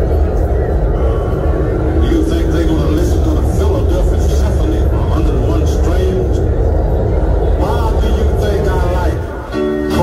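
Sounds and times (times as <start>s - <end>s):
crowd chattering: 0.0s - 10.0s
loud low rumble: 0.0s - 10.0s.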